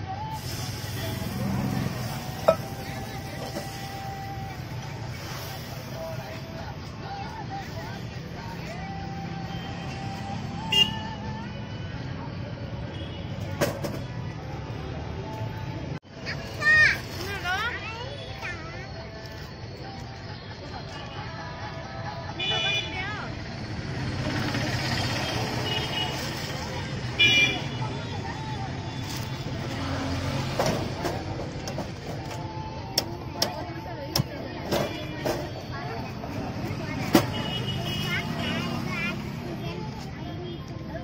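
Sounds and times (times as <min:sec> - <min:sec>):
traffic running past: 0:00.0 - 0:41.0
people talking: 0:00.4 - 0:09.0, 0:16.3 - 0:23.4, 0:24.2 - 0:41.0.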